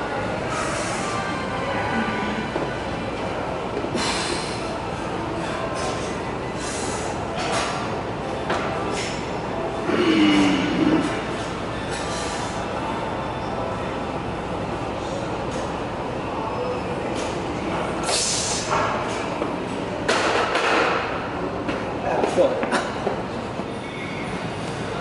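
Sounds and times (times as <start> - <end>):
gym room noise: 0.0 - 25.0.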